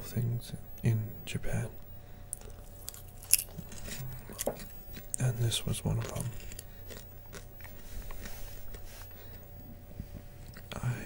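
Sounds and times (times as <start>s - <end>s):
popcorn being chewed: 2.3s - 11.0s.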